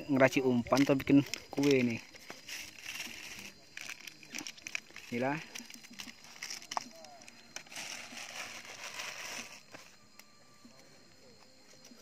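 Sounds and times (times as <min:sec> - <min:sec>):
plastic sachet crinkling: 0:00.6 - 0:09.7.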